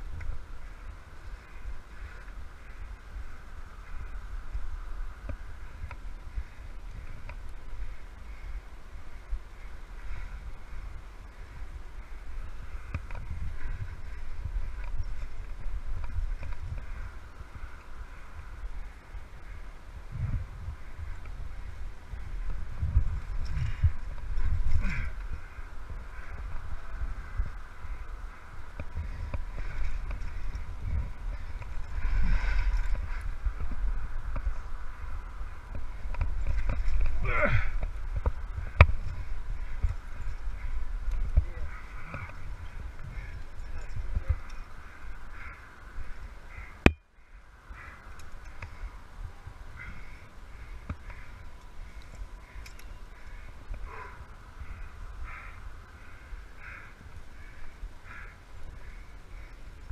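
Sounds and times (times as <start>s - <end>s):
wind rumble: 0.0s - 59.9s
climber breathing and straining: 5.3s - 47.0s, 49.7s - 59.9s.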